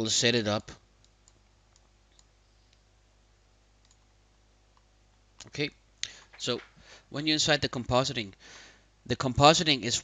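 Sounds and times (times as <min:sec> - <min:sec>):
faint low hum: 0:00.0 - 0:10.0
computer mouse clicks: 0:01.0 - 0:02.8, 0:03.8 - 0:04.1.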